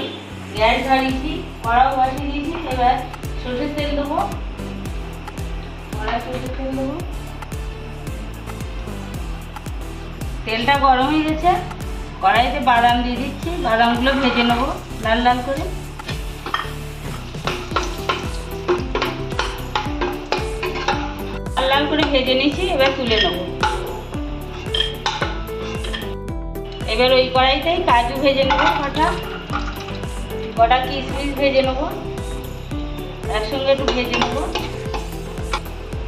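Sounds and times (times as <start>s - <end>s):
peanuts sizzling in oil: 0.3s - 36.0s
background music with beat: 0.6s - 36.0s
spatula stirring in pan: 15.9s - 26.3s, 28.0s - 31.3s.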